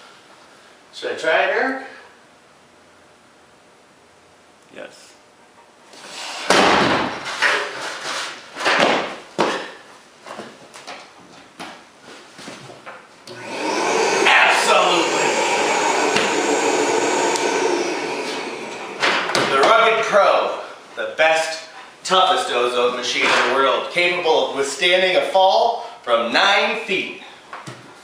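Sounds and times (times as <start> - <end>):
machine crashing onto floor: 6.5 - 7.4
fan whirring: 13.2 - 25.0.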